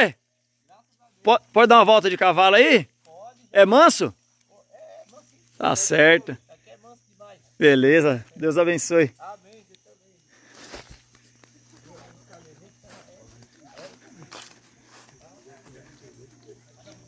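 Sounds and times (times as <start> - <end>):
footsteps on grass: 7.3 - 17.0.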